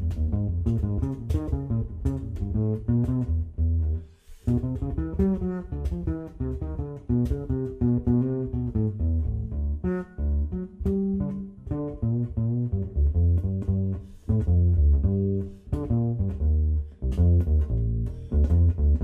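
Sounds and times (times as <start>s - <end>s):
acoustic bass guitar plucked: 0.0s - 19.0s.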